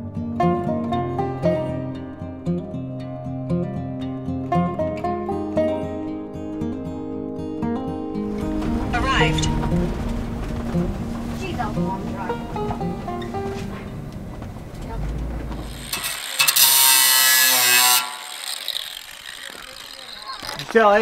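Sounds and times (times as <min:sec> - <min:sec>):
background music: 0:00.0 - 0:15.9
low vehicle rumble: 0:08.3 - 0:16.0
cordless drill boring into steel: 0:15.6 - 0:20.8.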